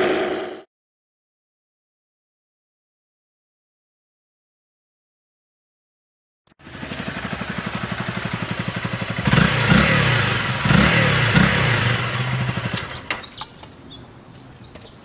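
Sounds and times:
motorcycle engine idling and revving: 0:06.5 - 0:13.5.

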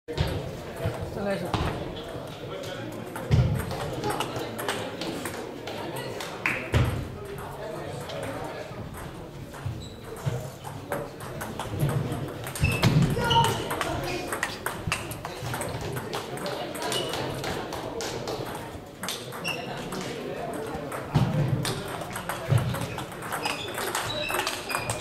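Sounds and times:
table tennis balls clicking: 0:02.1 - 0:06.7, 0:07.4 - 0:25.0.

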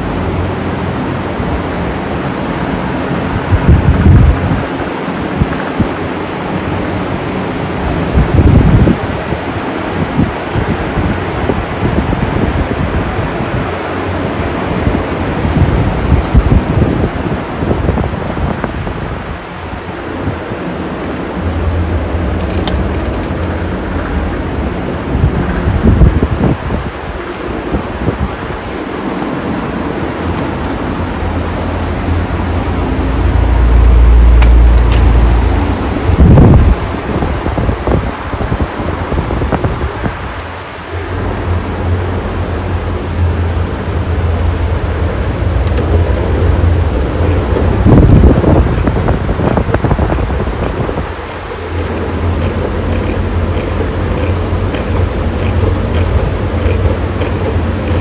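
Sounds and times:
fan wind buffeting microphone: 0:00.0 - 0:58.0.

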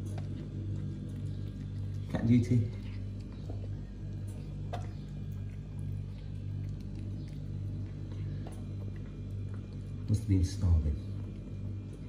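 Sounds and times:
cat chewing and licking: 0:00.0 - 0:12.0
steady low hum: 0:00.0 - 0:12.0.

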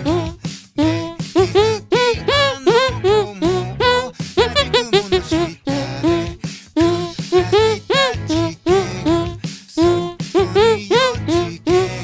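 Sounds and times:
hand music melody: 0:00.0 - 0:12.0.

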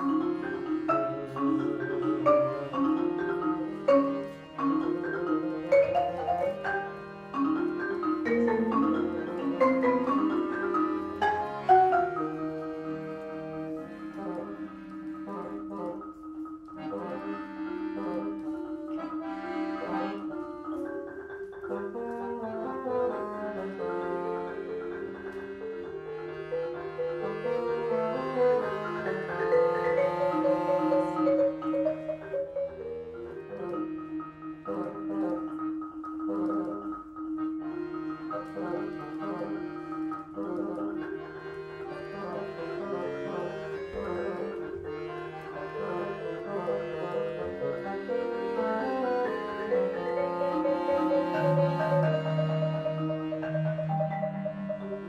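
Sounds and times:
accordion chords: 0:00.0 - 0:55.0
bassoon line: 0:00.0 - 0:55.0
marimba strokes: 0:00.0 - 0:55.0.

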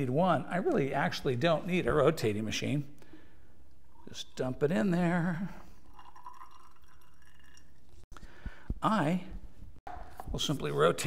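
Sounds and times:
faint trickle of liquid: 0:05.3 - 0:08.0.

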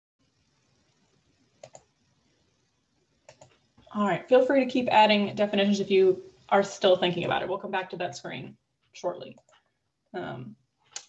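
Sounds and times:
faint computer clicks: 0:01.6 - 0:01.9, 0:03.3 - 0:03.7.

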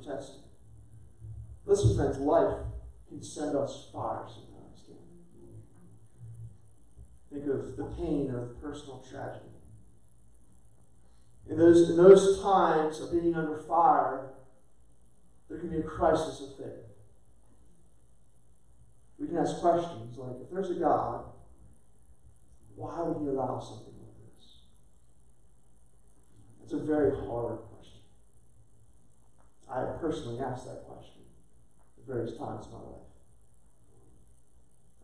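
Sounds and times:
faint low hum: 0:00.0 - 0:35.0
person speaking: 0:01.6 - 0:09.6, 0:22.6 - 0:24.5, 0:26.4 - 0:28.2.

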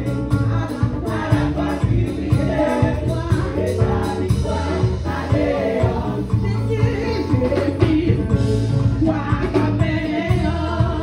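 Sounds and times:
band accompaniment with bass: 0:00.0 - 0:11.0
women singing in harmony: 0:00.0 - 0:11.0.

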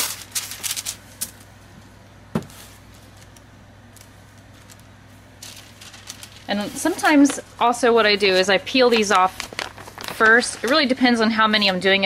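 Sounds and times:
paper rustling: 0:00.0 - 0:01.4, 0:04.0 - 0:12.0.

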